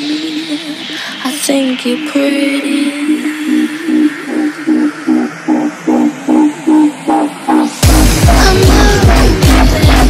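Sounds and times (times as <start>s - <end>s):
dance beat with heavy bass: 0.0s - 10.0s
repeating synth chord: 1.9s - 10.0s.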